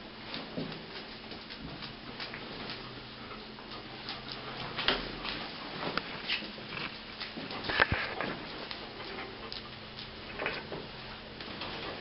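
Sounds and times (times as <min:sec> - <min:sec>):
dog claws ticking on tiles: 0:03.7 - 0:10.8.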